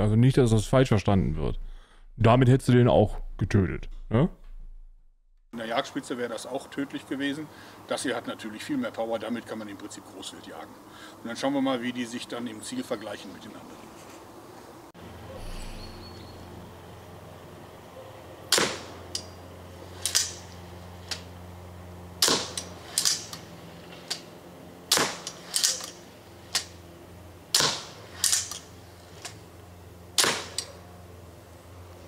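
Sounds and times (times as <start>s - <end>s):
bow shooting sharp snaps: 18.5s - 19.3s, 22.2s - 24.3s, 24.9s - 26.8s, 27.6s - 29.4s, 30.2s - 30.8s.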